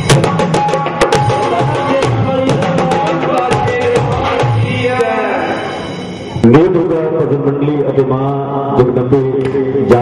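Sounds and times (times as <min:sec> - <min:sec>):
man chanting over loudspeaker: 0:01.3 - 0:05.8, 0:06.4 - 0:10.0.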